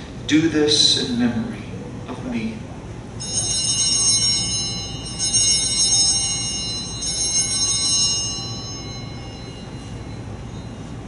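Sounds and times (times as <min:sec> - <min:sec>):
altar bells ringing: 0:03.2 - 0:11.0.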